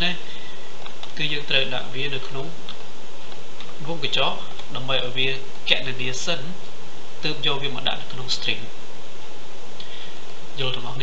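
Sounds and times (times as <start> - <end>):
man's voice: 0.0 - 0.3, 1.2 - 2.6, 3.8 - 6.6, 7.2 - 8.7, 10.6 - 11.0
buzzing hum: 0.0 - 11.0.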